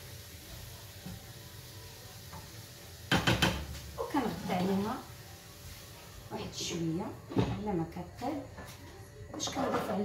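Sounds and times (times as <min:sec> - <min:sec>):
vegetables sizzling in a pan: 0:00.0 - 0:10.0.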